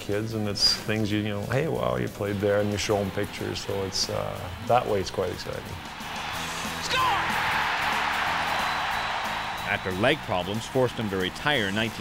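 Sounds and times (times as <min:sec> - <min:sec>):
background music with low notes: 0:00.0 - 0:12.0
arena crowd cheering: 0:01.8 - 0:12.0.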